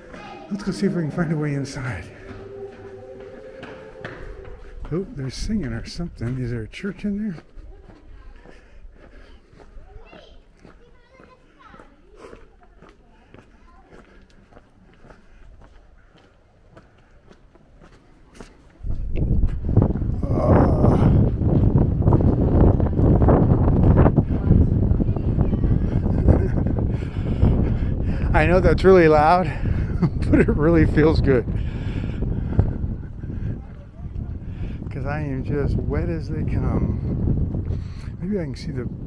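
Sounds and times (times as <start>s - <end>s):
wind buffeting microphone: 0.0s - 16.8s, 18.7s - 39.0s
faint distant voices: 0.0s - 19.2s.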